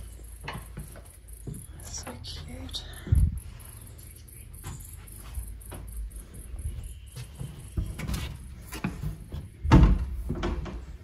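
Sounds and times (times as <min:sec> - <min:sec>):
wooden door opening: 0:07.8 - 0:11.0.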